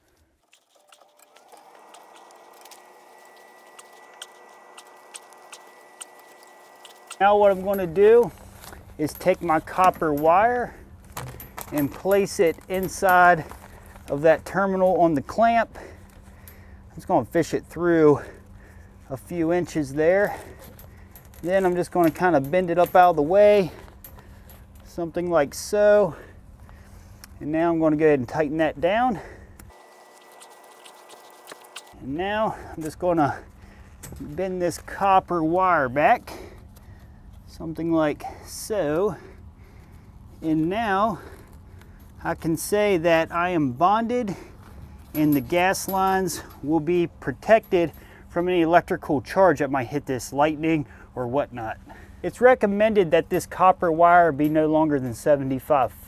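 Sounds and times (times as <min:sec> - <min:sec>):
screwdriver clicking and scraping metal: 0:00.4 - 0:08.0, 0:29.8 - 0:32.0.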